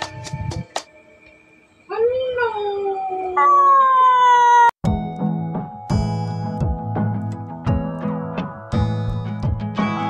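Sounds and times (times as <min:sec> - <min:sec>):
long howling cry: 0:01.9 - 0:04.8.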